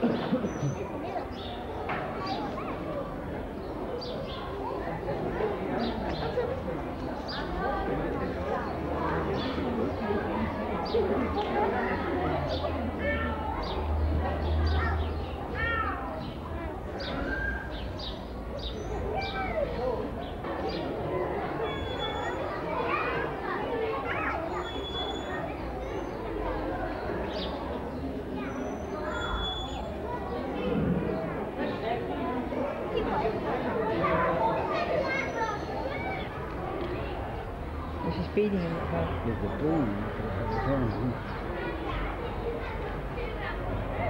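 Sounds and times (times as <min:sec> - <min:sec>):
chatter of adults and children: 0:00.0 - 0:44.0.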